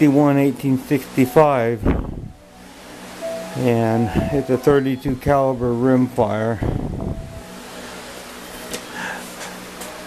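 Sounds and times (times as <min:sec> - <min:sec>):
electric desk fan whirring: 0:00.0 - 0:10.0.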